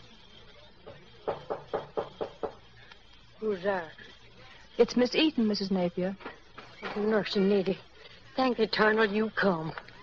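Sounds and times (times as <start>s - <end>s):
knocking on a door: 1.2s - 2.6s.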